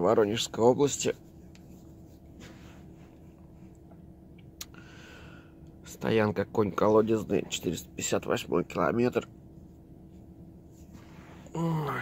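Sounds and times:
low steady hum: 0:00.0 - 0:12.0
hand rubbing over face and bedding: 0:01.0 - 0:03.7.

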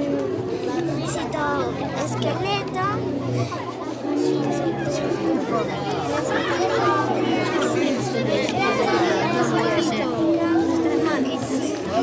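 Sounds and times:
children chattering: 0:00.0 - 0:12.0
voices talking over one another: 0:00.0 - 0:12.0.

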